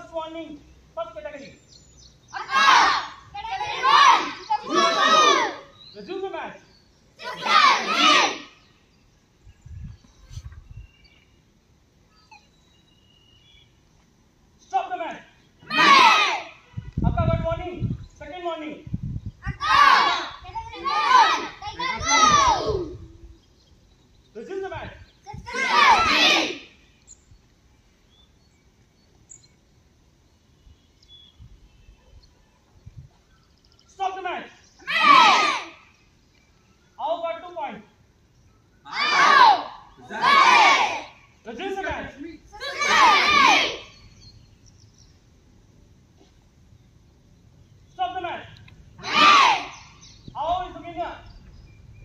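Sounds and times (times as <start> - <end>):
high-pitched shouted command: 2.4 - 5.7, 7.2 - 8.5, 15.7 - 16.6, 19.5 - 22.9, 25.3 - 26.6, 34.8 - 35.8, 38.9 - 41.1, 42.5 - 43.8, 49.0 - 49.7
high bird chirps: 8.0 - 13.8, 49.0 - 52.0.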